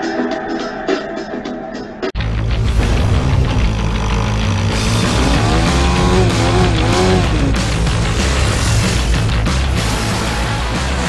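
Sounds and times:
loud music with heavy bass: 0:00.0 - 0:11.0.

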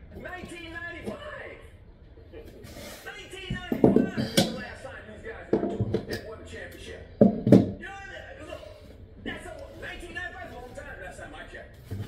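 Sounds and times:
man talking: 0:02.4 - 0:07.1, 0:07.8 - 0:11.9.

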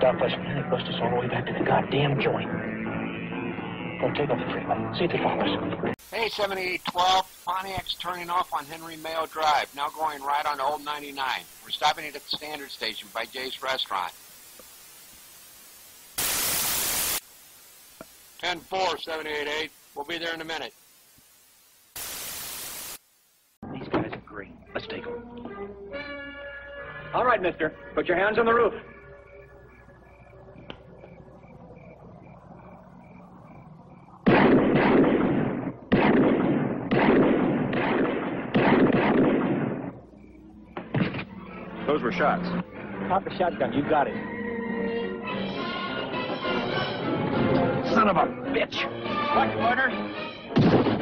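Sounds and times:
two-way radio static: 0:04.0 - 0:24.4
gunshots echoing: 0:34.2 - 0:40.0.

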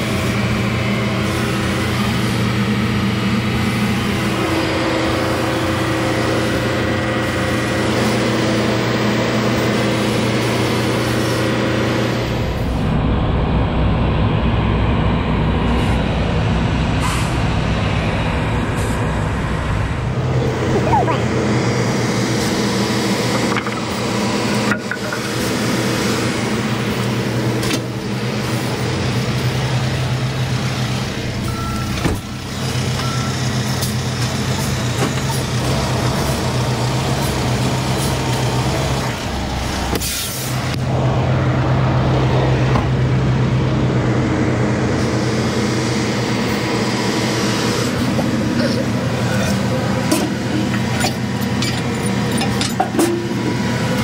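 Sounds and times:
truck diesel engine idling: 0:00.0 - 0:54.0
steady beep: 0:31.4 - 0:32.0, 0:33.0 - 0:33.5
knocks and air hisses: 0:39.8 - 0:40.8.

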